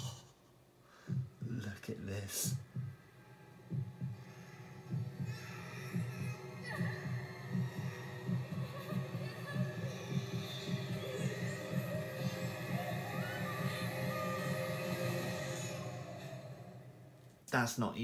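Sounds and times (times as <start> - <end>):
eerie sustained music: 3.5 - 17.2
faint voices: 5.2 - 15.9.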